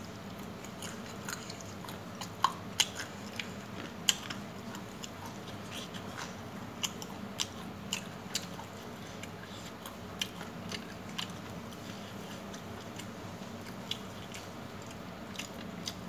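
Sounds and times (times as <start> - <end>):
faint low hum: 0.0 - 16.0
person chewing crunchy food: 0.2 - 16.0.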